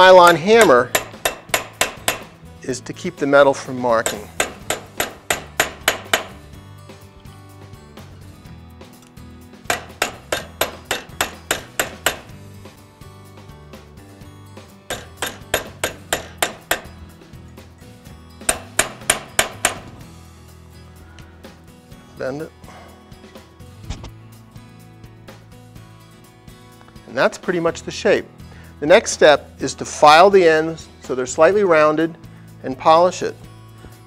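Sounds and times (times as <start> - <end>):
soft background music: 0.0 - 34.0
hammer striking metal bracelet: 0.6 - 2.3, 4.0 - 6.4, 9.7 - 12.3, 14.9 - 17.0, 18.4 - 19.9.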